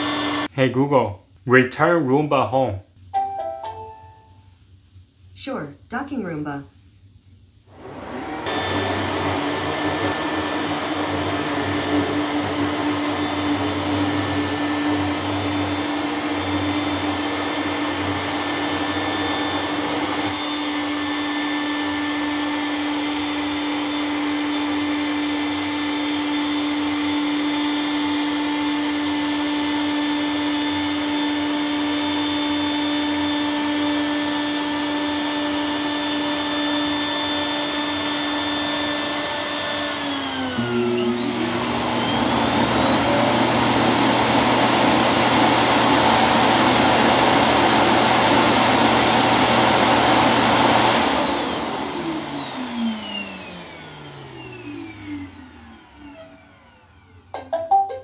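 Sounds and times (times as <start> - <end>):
robot vacuum whirring: 7.7 - 29.1, 30.0 - 57.8.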